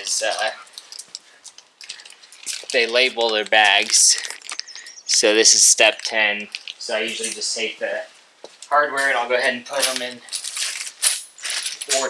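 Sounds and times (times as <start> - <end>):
metal bolts clinking on concrete: 0.0 - 7.5, 9.7 - 12.0.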